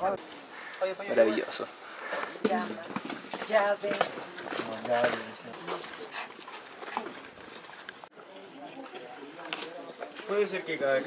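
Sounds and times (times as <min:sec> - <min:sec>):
footsteps on stone: 0:02.0 - 0:08.1, 0:08.8 - 0:11.0
people talking: 0:02.4 - 0:06.3.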